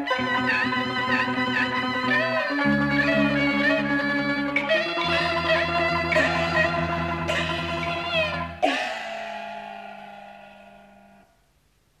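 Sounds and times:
opera instrumental accompaniment: 0.0 - 8.7
sharp struck accent ringing: 6.2 - 11.5.

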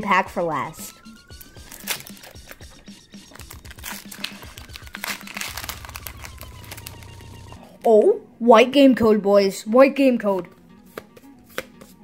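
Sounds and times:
quiet background music: 0.0 - 12.0
foil wrapper crinkling and tearing: 1.4 - 2.6, 3.3 - 7.6.

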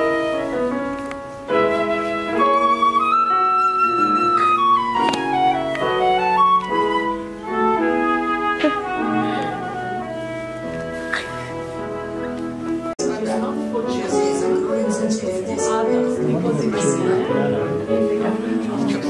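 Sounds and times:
flute playing classical melody: 0.0 - 13.8.

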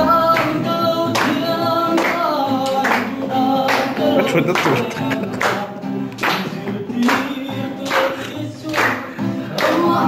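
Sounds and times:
person singing: 0.0 - 10.0
strummed acoustic guitar: 0.0 - 10.0.

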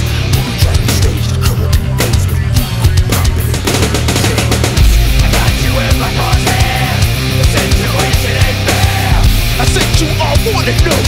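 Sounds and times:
rap-metal band playing: 0.0 - 11.0
deep low bass note: 3.0 - 8.0.

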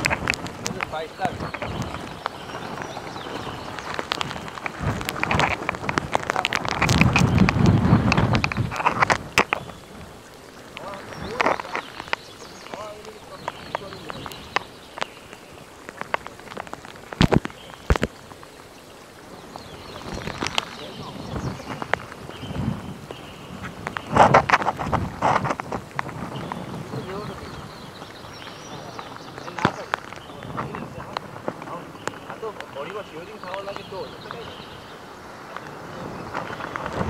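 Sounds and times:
raindrops tapping: 0.0 - 37.0
wind and rain rushing: 0.0 - 37.0
wind gust buffeting microphone: 0.0 - 37.0.

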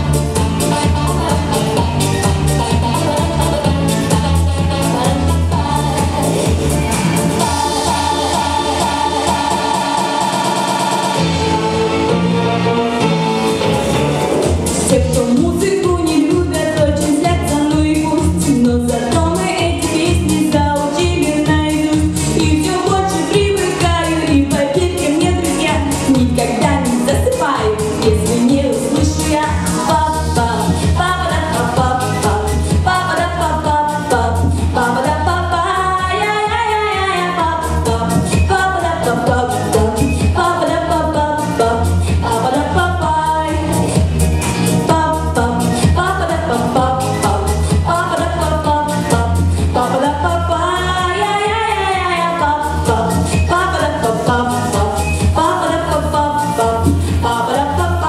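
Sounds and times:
held keyboard chords: 0.0 - 50.1
pop backing track: 0.0 - 58.0.

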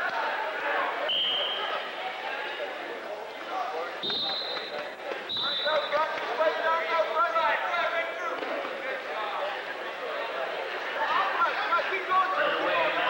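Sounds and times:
referee's whistle blasts: 1.0 - 1.8, 4.0 - 6.1.

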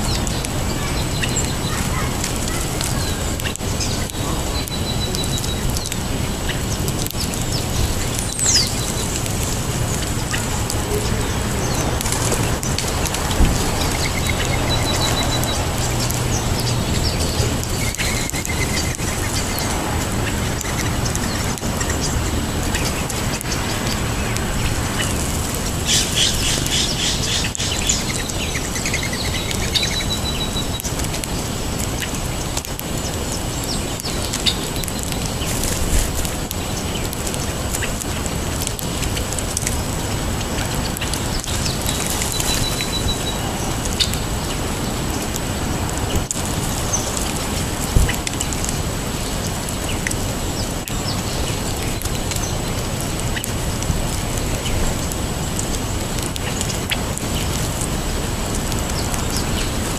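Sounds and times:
small birds chirping: 0.0 - 59.9.

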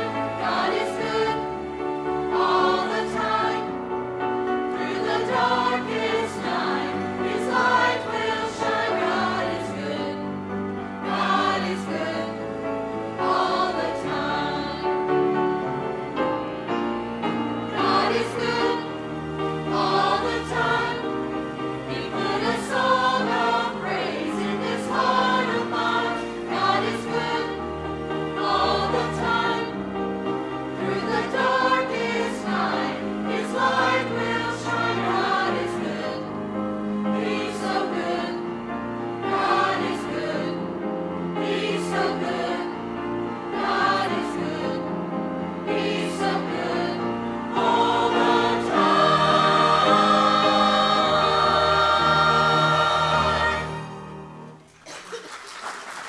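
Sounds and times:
mixed choir singing an anthem: 0.0 - 54.6.

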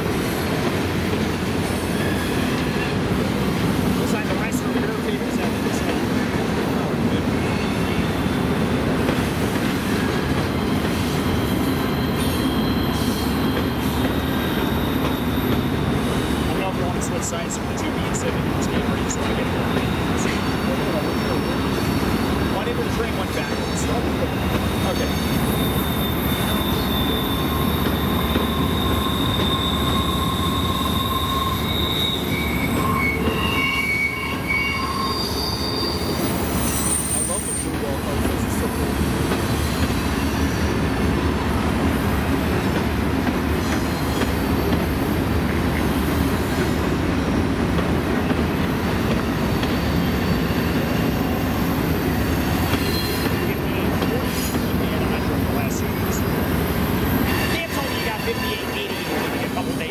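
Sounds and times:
train wheels rumbling on rail: 0.0 - 59.9
high-pitched flange squeals: 24.0 - 37.7.

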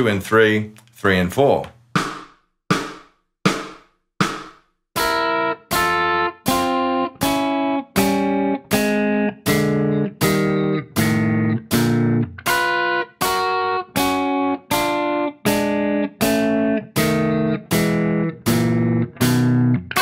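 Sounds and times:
electric guitar dyads: 5.0 - 20.0.

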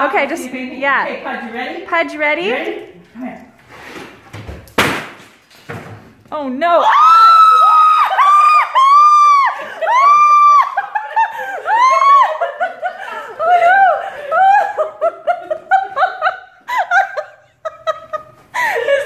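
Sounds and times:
woman screaming: 6.7 - 11.0, 11.7 - 12.5
woman laughing: 8.2 - 19.0.

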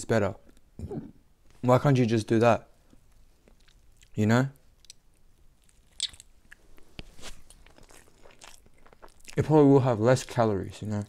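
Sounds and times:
person chewing food: 3.4 - 4.1, 4.8 - 9.4.

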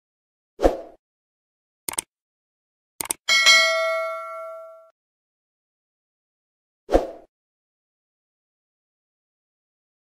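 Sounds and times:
quick mouse clicks: 1.9 - 2.1, 3.0 - 3.2
bell ding: 3.3 - 4.9.

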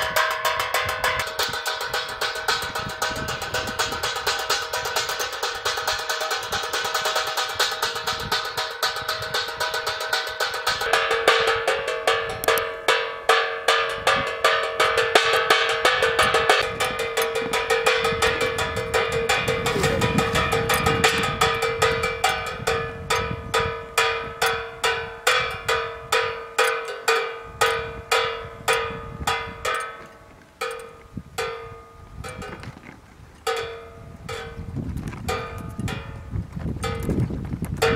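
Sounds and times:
wire arm clanging on metal pan: 0.0 - 31.6.

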